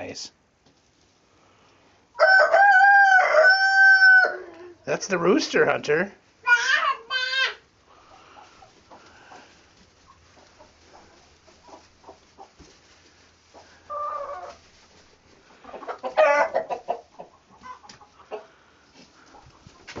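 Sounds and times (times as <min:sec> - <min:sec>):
chickens clucking: 0:07.9 - 0:20.0.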